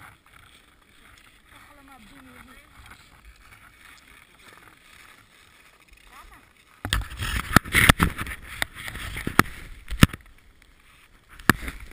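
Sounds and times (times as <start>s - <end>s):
camera handling rustling and knocks: 6.8s - 10.3s.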